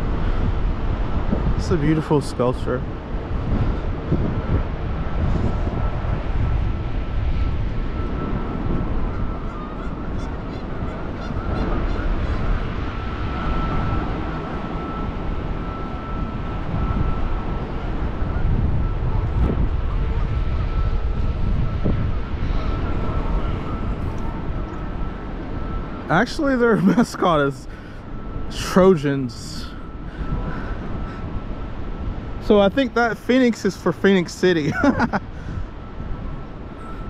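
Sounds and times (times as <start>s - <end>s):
high-pitched steady tone: 0.0s - 37.0s
wind buffeting microphone: 0.0s - 37.0s.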